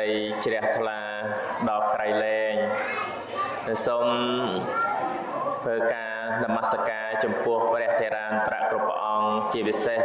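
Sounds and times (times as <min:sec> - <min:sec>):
man preaching: 0:00.0 - 0:02.8, 0:03.6 - 0:04.8, 0:05.6 - 0:10.0.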